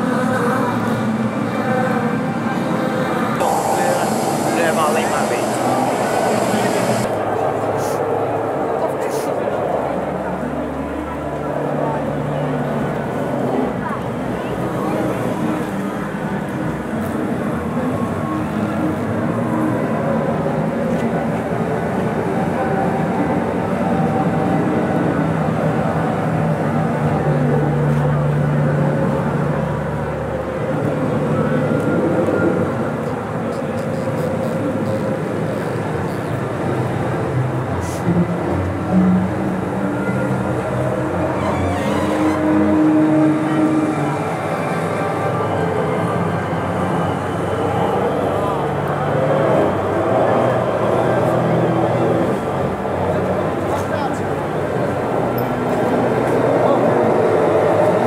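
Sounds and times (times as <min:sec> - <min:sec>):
street crowd chatter: 0:00.0 - 0:58.0.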